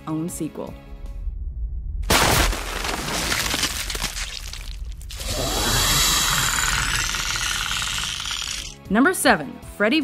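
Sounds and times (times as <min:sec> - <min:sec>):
music: 0:00.0 - 0:02.1, 0:08.2 - 0:10.0
alien hissing with rattle: 0:05.2 - 0:08.8.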